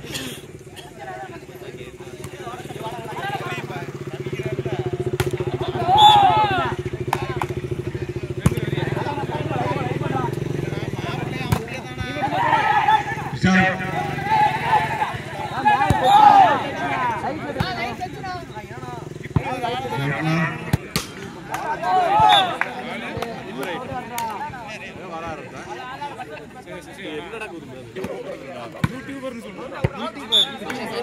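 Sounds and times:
people shouting and calling out: 0:00.8 - 0:31.0.

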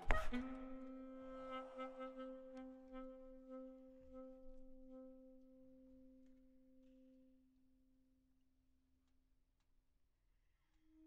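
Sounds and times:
soft low saxophone note: 0:00.0 - 0:05.3.

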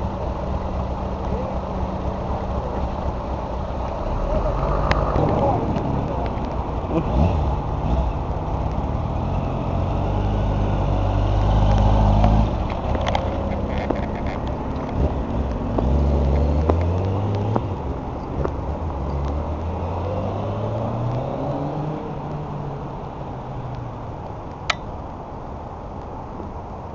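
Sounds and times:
motorcycle engine revving: 0:01.2 - 0:17.8.

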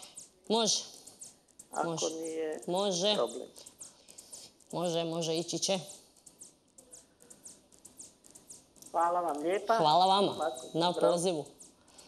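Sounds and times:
soft high-pitched ticks: 0:00.0 - 0:12.0.

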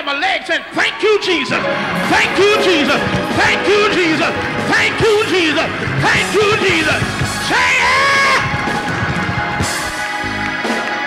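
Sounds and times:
gospel band music: 0:01.4 - 0:11.0.

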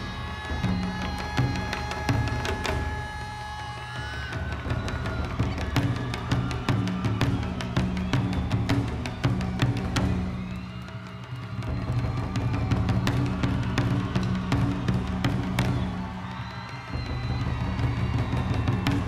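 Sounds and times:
taiko drums: 0:00.0 - 0:19.0.

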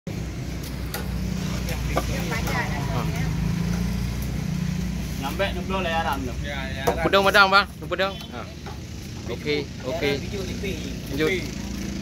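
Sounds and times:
engine droning: 0:00.1 - 0:12.0
people talking: 0:01.6 - 0:03.4.

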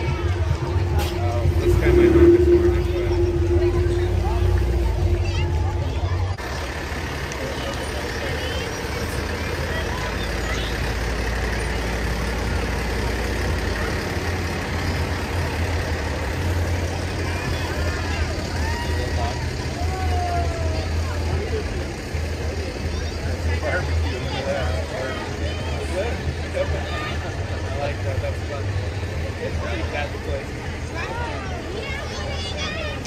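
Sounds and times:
crowd voices: 0:00.0 - 0:33.0
truck diesel engine rumbling: 0:00.0 - 0:33.0.

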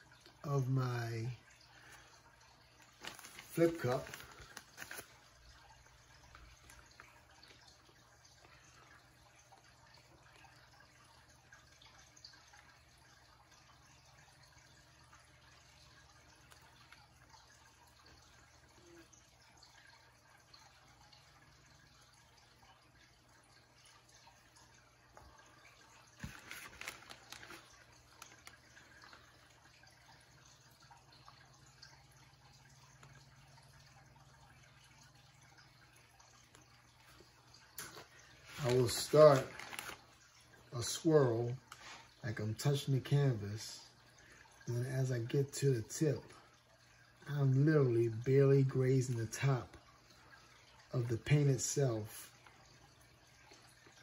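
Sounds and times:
clicks and rustling: 0:26.2 - 0:29.3.

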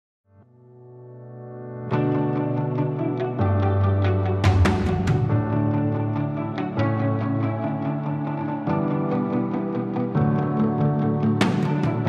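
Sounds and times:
sustained keyboard chord: 0:00.5 - 0:12.0.

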